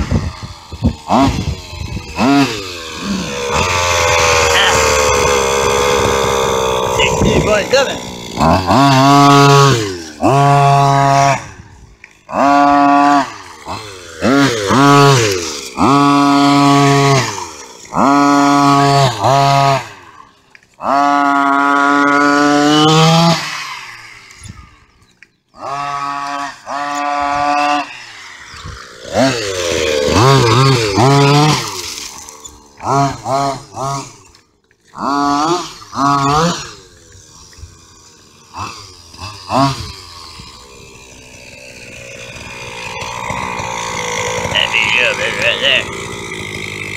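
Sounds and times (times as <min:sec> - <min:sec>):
small two-stroke engine revving: 0:00.0 - 0:46.9.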